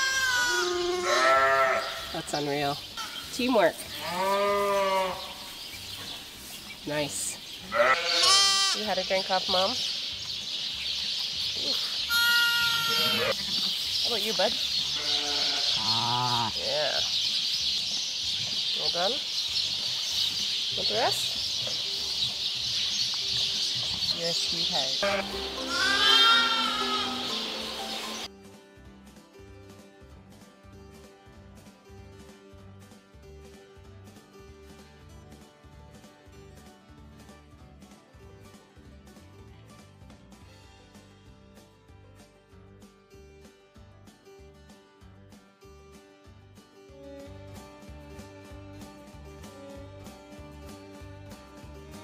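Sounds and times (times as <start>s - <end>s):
sheep bleating: 0.0s - 2.1s, 3.9s - 5.4s, 7.7s - 8.8s, 12.1s - 13.7s, 15.0s - 17.0s, 25.0s - 27.4s
background music: 0.0s - 52.0s.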